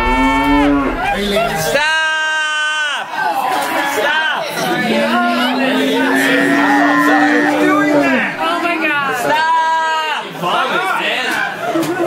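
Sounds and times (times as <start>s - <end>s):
moan-like wailing note: 0.0s - 1.4s.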